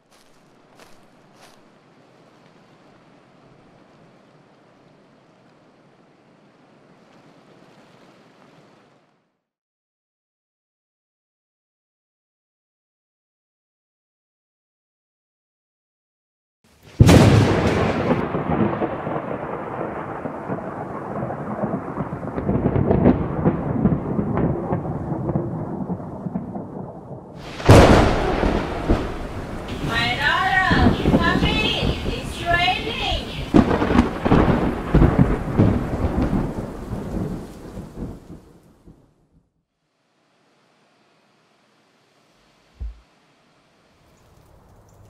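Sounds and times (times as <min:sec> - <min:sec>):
steady rain: 0:00.0 - 0:09.4, 0:16.7 - 0:45.0
loud thunderclap: 0:17.0 - 0:39.1
rolling thunder: 0:17.0 - 0:39.2.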